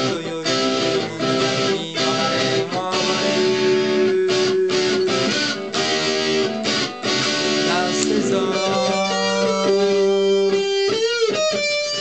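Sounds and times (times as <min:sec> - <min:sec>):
fingerpicked electric guitar melody: 0:00.0 - 0:12.0.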